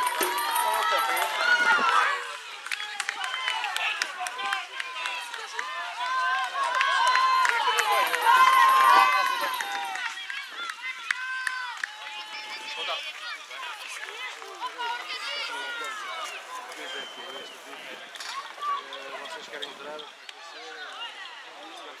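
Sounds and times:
people shouting: 0.0 - 17.0.

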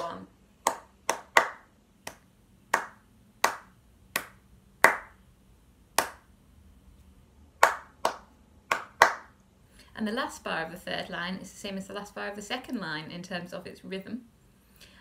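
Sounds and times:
hands clapping a rhythm: 0.0 - 5.2, 6.0 - 6.3, 7.6 - 9.4.

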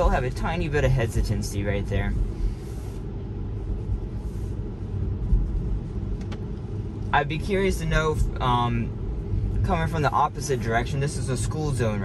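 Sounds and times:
tyre road noise on wet road: 0.0 - 12.0.

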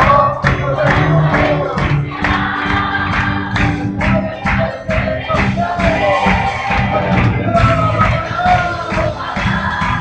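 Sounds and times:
band playing: 0.0 - 9.9
congregation singing: 0.0 - 10.0
steady percussive beat: 0.0 - 10.0.

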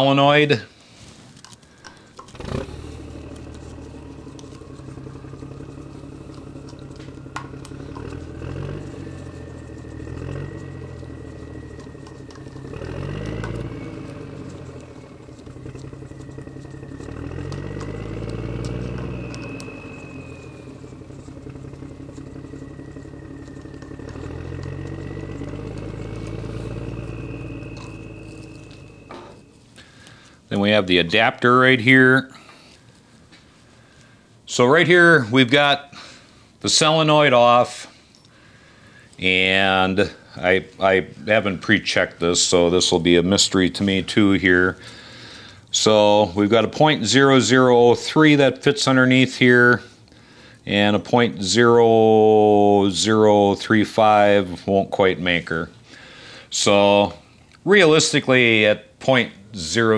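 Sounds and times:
motor engine droning: 0.0 - 59.9.

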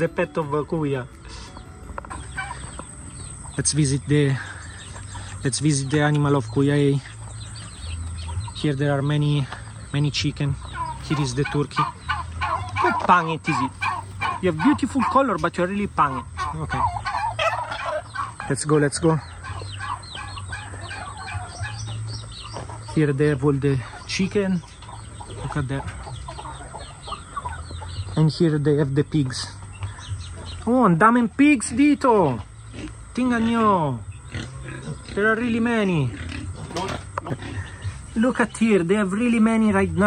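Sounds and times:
chicken clucking: 0.0 - 35.6.

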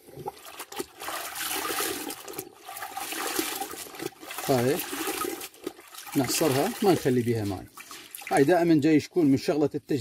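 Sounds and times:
cloth sloshing in bucket of water: 0.0 - 9.4.

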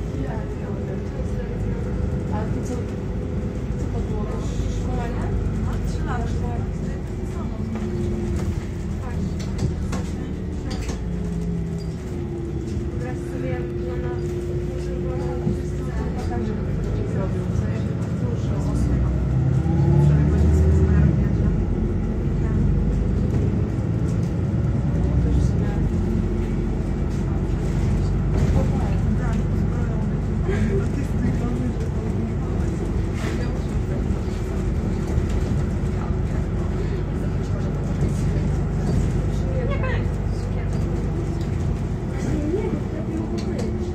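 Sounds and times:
bus engine and road rumble: 0.0 - 43.9.

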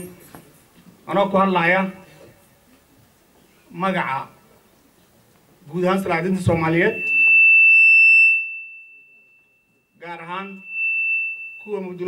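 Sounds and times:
microphone feedback tone: 6.0 - 12.0.

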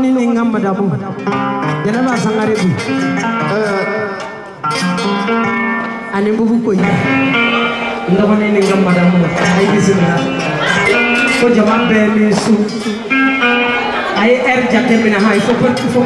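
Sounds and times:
live band playing: 0.0 - 16.0
plucked guitar line: 0.0 - 16.0
person singing: 6.3 - 16.0.

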